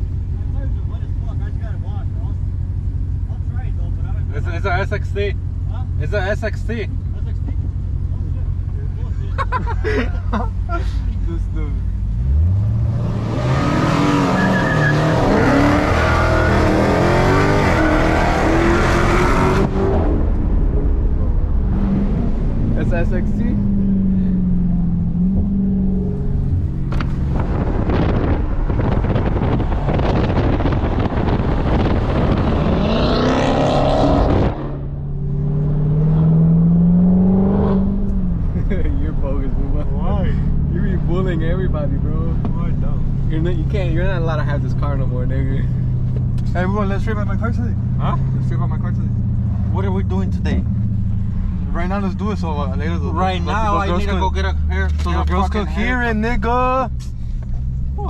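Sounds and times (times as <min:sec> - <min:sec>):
car engine accelerating hard: 0:00.0 - 0:58.0.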